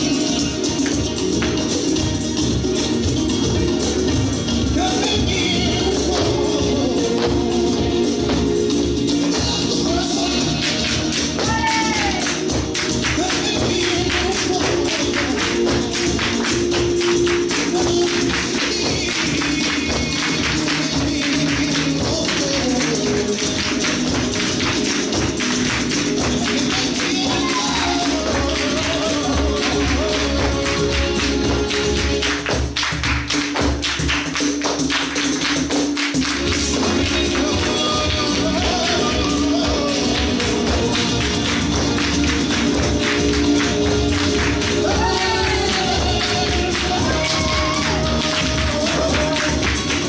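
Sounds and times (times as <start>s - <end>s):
flamenco music: 0.0s - 50.0s
hand-clapping: 10.4s - 50.0s.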